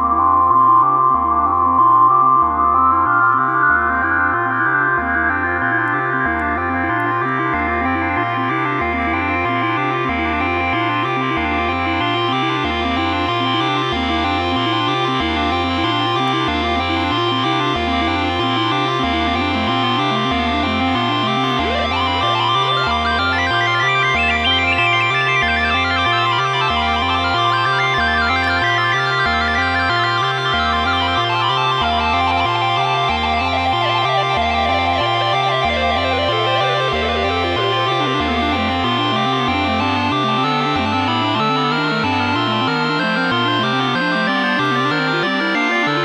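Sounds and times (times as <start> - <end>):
analog synthesizer sequence: 0.0 - 46.0.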